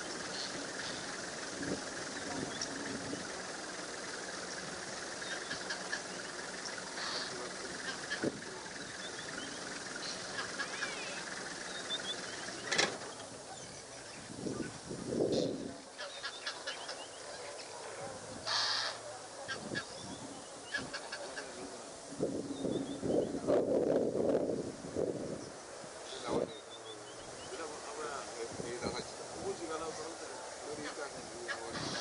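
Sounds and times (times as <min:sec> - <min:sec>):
low calls or honks: 0:00.0 - 0:21.8
birds chirping: 0:00.0 - 0:23.8, 0:25.0 - 0:32.0.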